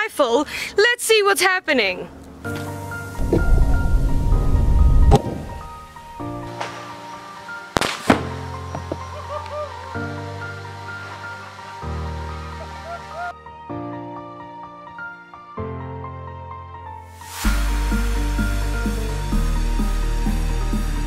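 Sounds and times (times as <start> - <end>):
background music: 2.0 - 21.0
low rumble: 3.1 - 6.5
rifle shot: 7.8 - 8.4.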